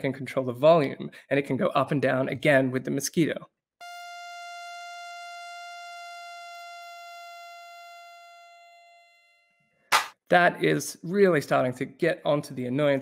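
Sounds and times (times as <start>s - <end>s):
synthesised mosquito whine: 3.8s - 9.9s.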